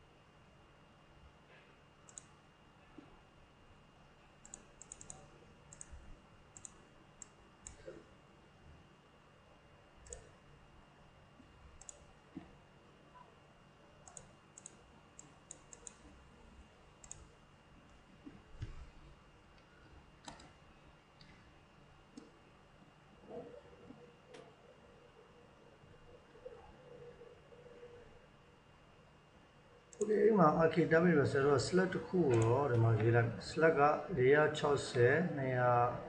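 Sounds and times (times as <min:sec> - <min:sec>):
low steady hum: 0:00.0 - 0:36.0
computer mouse clicks: 0:02.1 - 0:02.4, 0:04.4 - 0:06.0, 0:06.6 - 0:07.9, 0:10.0 - 0:10.3, 0:11.8 - 0:12.5, 0:14.0 - 0:16.1, 0:17.0 - 0:17.3, 0:19.6 - 0:20.6, 0:29.9 - 0:30.1, 0:32.3 - 0:32.6.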